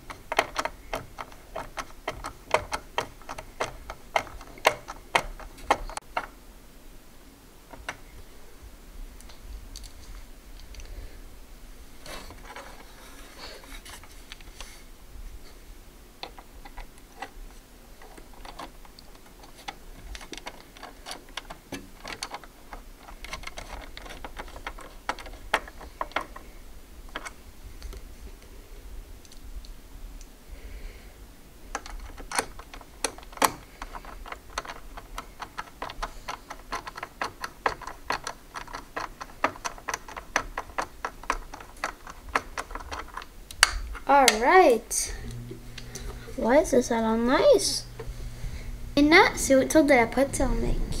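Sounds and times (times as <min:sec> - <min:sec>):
screwdriver clicks and ticks: 0:00.0 - 0:06.3.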